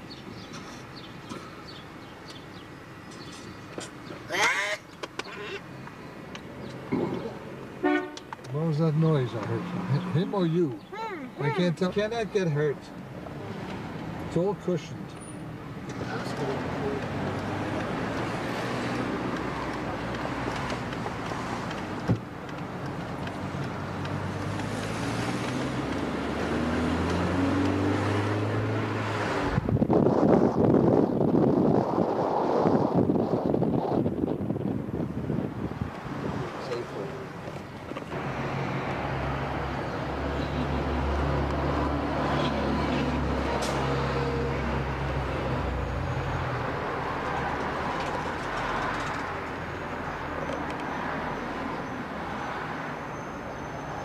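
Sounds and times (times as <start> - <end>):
vehicle engine hum: 0.0 - 54.0.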